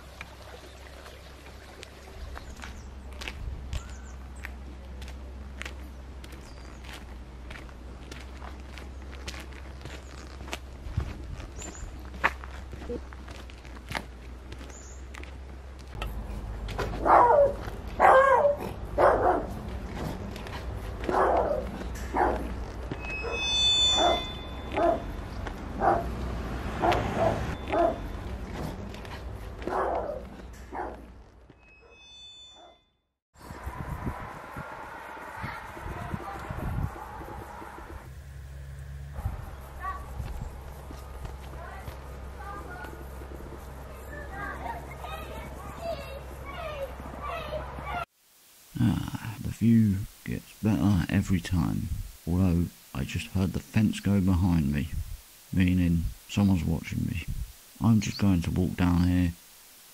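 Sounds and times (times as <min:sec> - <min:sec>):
footsteps on pavement: 0:01.7 - 0:23.2, 0:24.7 - 0:31.7, 0:39.5 - 0:47.2
dog barking: 0:16.9 - 0:19.6, 0:21.0 - 0:22.6, 0:23.2 - 0:25.1, 0:25.8 - 0:26.2, 0:26.8 - 0:28.0, 0:29.6 - 0:31.0.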